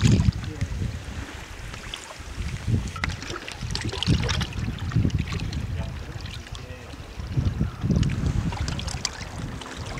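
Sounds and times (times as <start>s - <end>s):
waves lapping against rocks: 0.0s - 9.9s
wind buffeting microphone: 0.0s - 9.9s.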